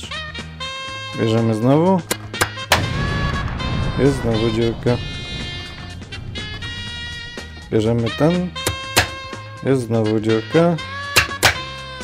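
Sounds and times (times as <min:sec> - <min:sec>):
background music: 0:00.0 - 0:12.0
explosion sound effect: 0:02.8 - 0:08.9.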